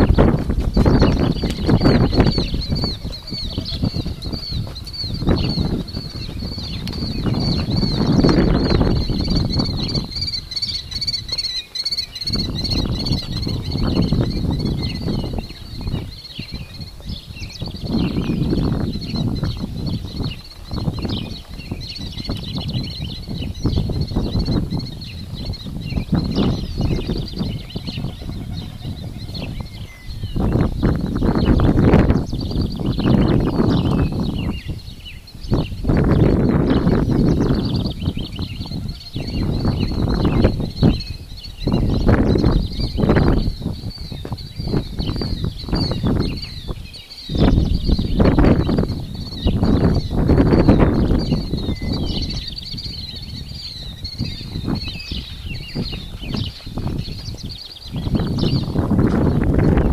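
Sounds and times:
small birds chirping: 0.0 - 59.9.

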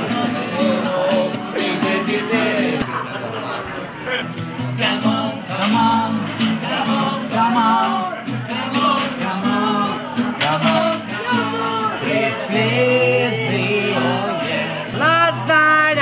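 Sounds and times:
acoustic guitar strumming: 0.0 - 3.2, 4.1 - 16.0
person singing: 4.8 - 16.0.

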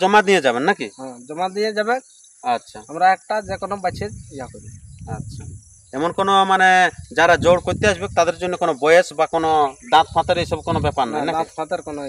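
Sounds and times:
insect chirring: 0.0 - 12.0
people talking: 0.0 - 12.0.

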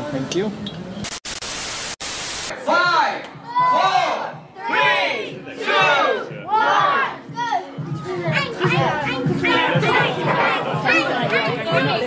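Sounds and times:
tv static hiss: 1.0 - 2.5
crowd shouting: 2.5 - 7.6.

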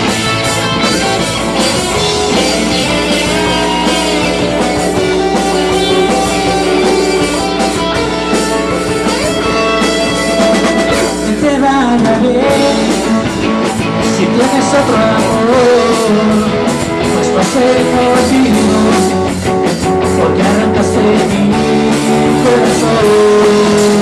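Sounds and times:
live rock band playing: 0.0 - 24.0.

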